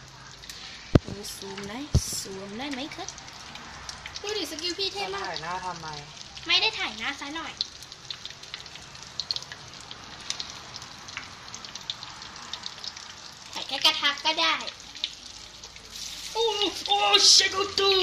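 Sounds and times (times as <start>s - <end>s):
food deep-frying in oil: 0.0s - 18.0s.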